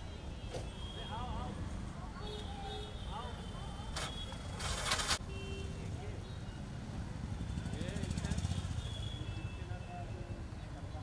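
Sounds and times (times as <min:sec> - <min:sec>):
traffic rumble: 0:00.0 - 0:11.0
auto-rickshaw engine: 0:01.4 - 0:11.0
motorcycle engine: 0:07.0 - 0:09.2.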